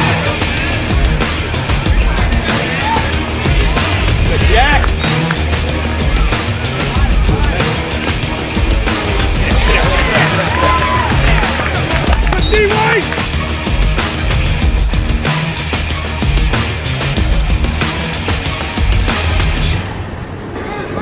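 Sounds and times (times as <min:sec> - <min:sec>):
music with heavy beat and bass: 0:00.0 - 0:19.8.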